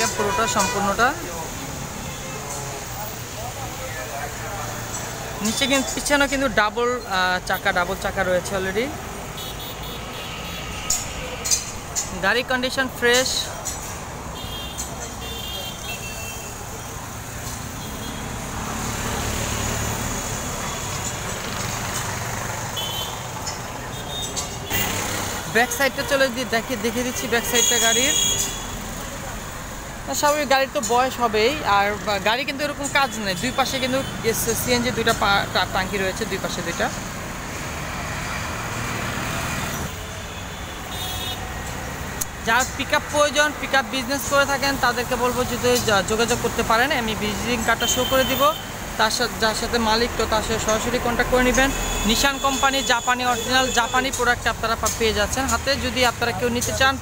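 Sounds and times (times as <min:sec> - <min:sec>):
street traffic noise: 0:00.0 - 0:57.0
vehicle passing by: 0:17.0 - 0:25.6, 0:34.1 - 0:39.9.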